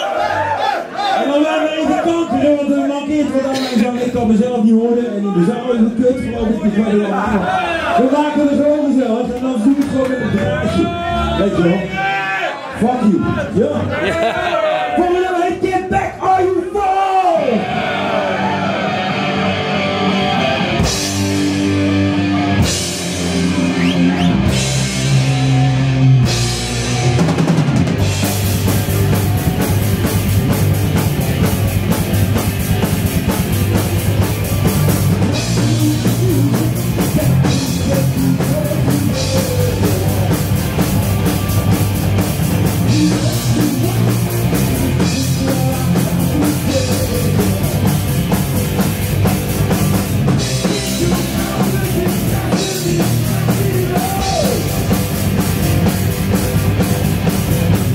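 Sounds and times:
heavy metal band playing: 0:01.8 - 0:57.9.

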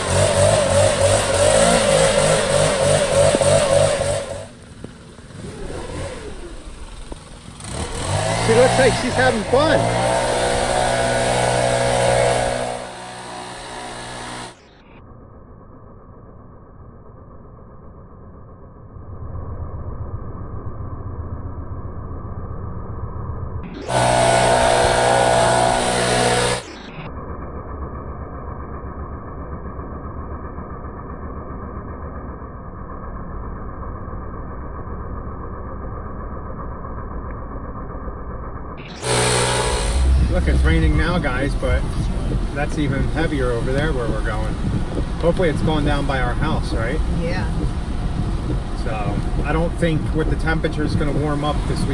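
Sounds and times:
leaf blower running: 0:00.0 - 0:14.7, 0:23.7 - 0:26.9, 0:38.8 - 0:49.7.

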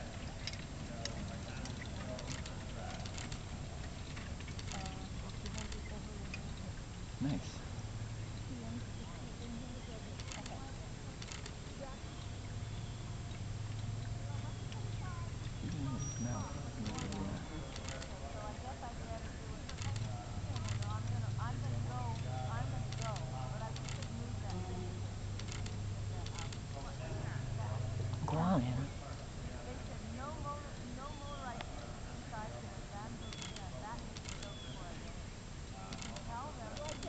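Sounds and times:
faint indistinct voices: 0:00.0 - 0:37.0
steady low hum: 0:00.0 - 0:37.0
light clicks: 0:09.4 - 0:11.6, 0:19.7 - 0:21.2, 0:25.4 - 0:26.9, 0:33.3 - 0:34.8, 0:35.9 - 0:37.0.

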